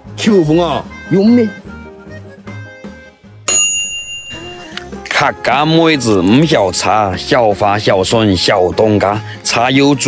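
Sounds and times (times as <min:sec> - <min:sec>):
background music with low beat: 0:00.0 - 0:09.2
bell-like ding: 0:03.5 - 0:05.0.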